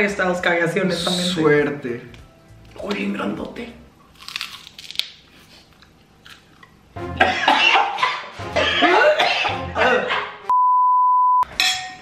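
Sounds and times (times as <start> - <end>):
high test-tone beep: 10.5 - 11.5.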